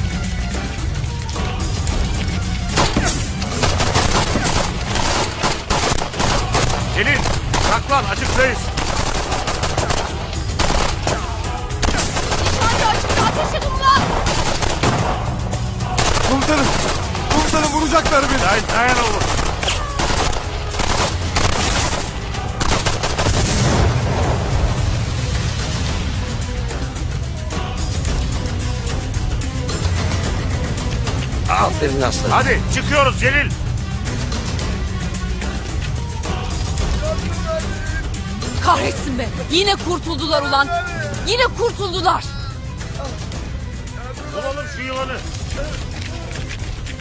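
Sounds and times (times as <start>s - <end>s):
dramatic background music: 0.0s - 47.0s
rifle and machine-gun shots: 3.5s - 11.2s, 11.8s - 15.1s, 16.0s - 23.8s.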